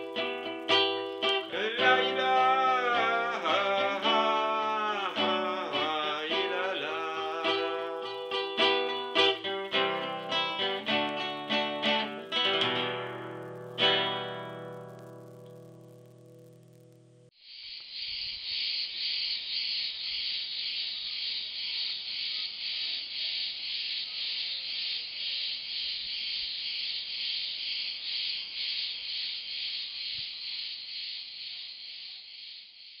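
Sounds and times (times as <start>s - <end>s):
crickets chirring: 0.0s - 33.0s.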